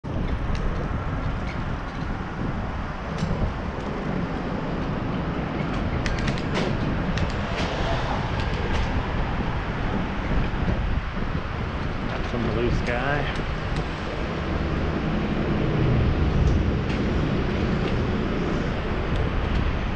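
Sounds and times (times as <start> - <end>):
bicycle tyre and road noise: 0.0 - 19.9
wind rumbling on microphone: 0.0 - 19.9
sharp clicks and rattles: 4.8 - 7.7.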